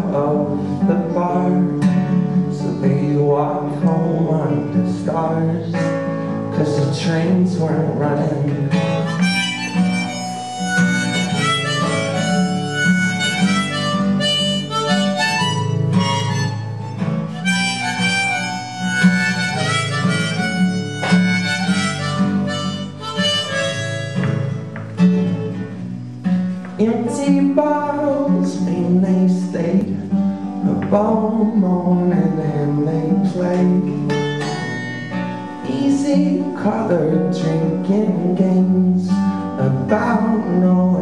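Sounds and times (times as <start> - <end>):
strummed acoustic guitar: 0.0 - 41.0
harmonica solo: 8.9 - 25.6.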